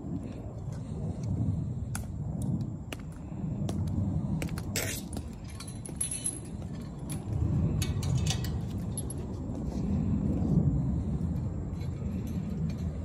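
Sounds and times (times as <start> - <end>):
steady low rumble: 0.0 - 13.0
metal chain clinking: 4.8 - 9.4.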